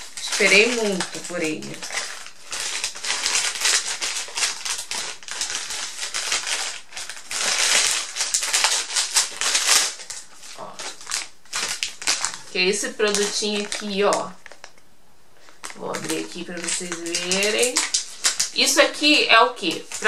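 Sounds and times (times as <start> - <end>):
packaging crinkling and tearing: 0.0 - 14.8, 15.4 - 20.0.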